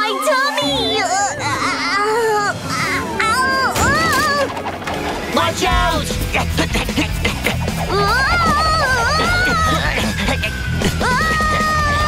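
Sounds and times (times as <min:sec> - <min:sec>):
cartoon voice wailing in pain: 0:00.0 - 0:04.5, 0:07.9 - 0:12.0.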